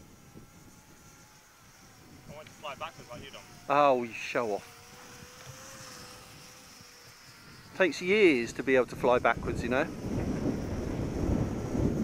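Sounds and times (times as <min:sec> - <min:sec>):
model plane motor buzzing: 0:00.0 - 0:12.0.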